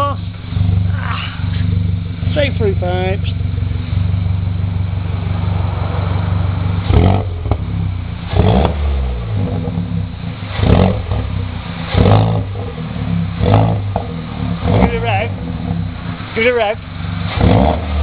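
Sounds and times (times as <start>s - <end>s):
car engine idling and revving: 0.0s - 18.0s.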